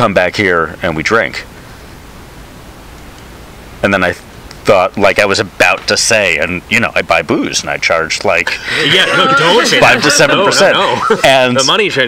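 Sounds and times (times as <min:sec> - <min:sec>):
background hiss: 0:00.0 - 0:12.0
person speaking: 0:03.8 - 0:12.0.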